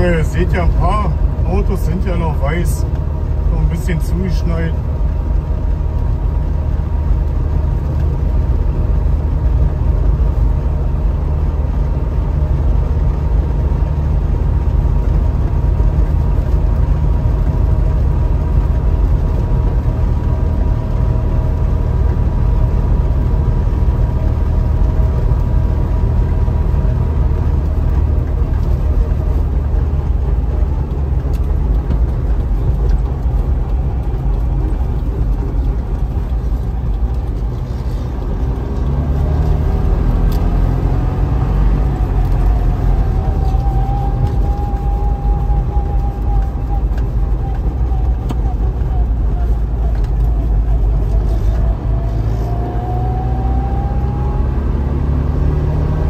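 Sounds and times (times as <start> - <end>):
two-stroke car engine running: 0.0 - 52.4
road noise: 0.0 - 56.0.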